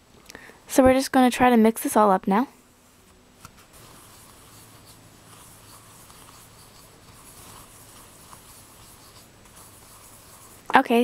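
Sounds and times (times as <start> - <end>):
spatula scraping in mixing bowl: 3.8 - 11.0.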